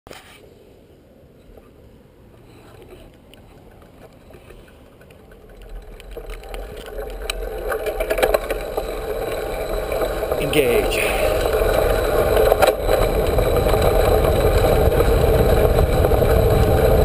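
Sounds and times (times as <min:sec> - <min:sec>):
wind rushing over camera: 0:00.2 - 0:17.0
bike clicks and rattles: 0:02.4 - 0:17.0
tyre rumble on asphalt: 0:02.4 - 0:17.0.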